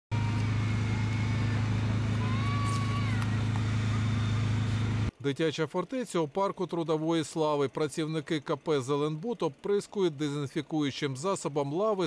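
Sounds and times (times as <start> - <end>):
two-stroke engine droning: 0.1 - 5.2.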